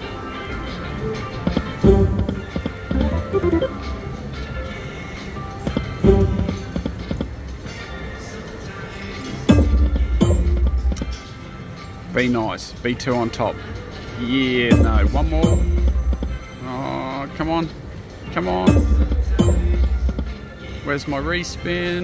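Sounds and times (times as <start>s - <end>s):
slot machine game music: 1.8s - 4.3s, 14.7s - 16.9s.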